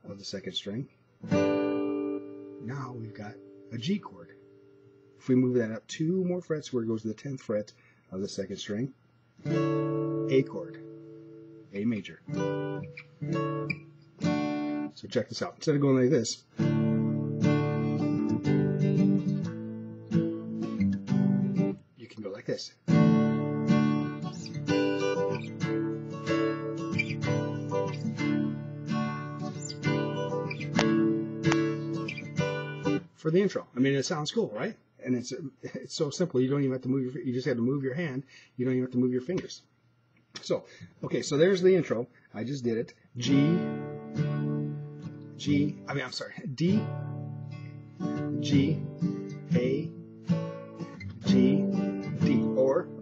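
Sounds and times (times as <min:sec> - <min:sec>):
acoustic guitar strumming chords: 0:01.2 - 0:05.2, 0:09.4 - 0:15.0, 0:16.1 - 0:21.8, 0:22.8 - 0:33.2, 0:43.2 - 0:53.0.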